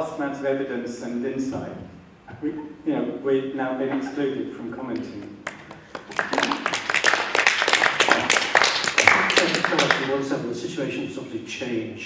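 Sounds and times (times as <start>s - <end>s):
crowd applauding: 5.2s - 10.1s.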